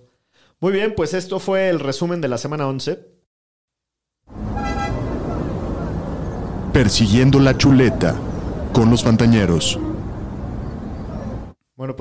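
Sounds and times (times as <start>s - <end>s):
car horn toot: 4.3s - 5.6s
traffic noise: 4.3s - 11.6s.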